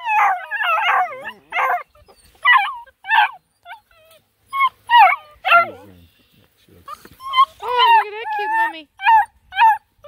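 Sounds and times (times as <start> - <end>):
puppies yipping and whining: 0.0 - 6.0, 6.8 - 10.0.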